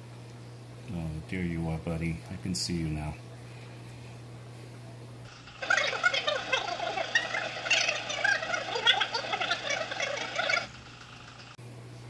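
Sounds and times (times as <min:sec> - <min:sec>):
rapid animal-like chirps: 0:05.3 - 0:10.8.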